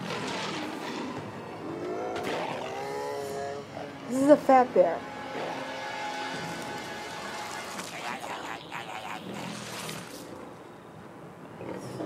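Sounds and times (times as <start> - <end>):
cartoon animals growling: 1.7 - 4.0, 7.3 - 10.3.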